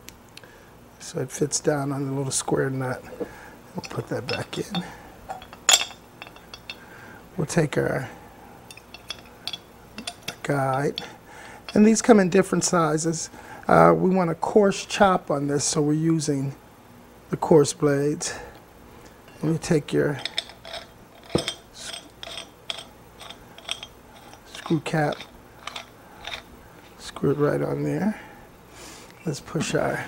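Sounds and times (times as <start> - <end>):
metal parts clinking: 3.1 - 6.9, 8.7 - 11.1, 11.7 - 12.0, 19.3 - 27.5.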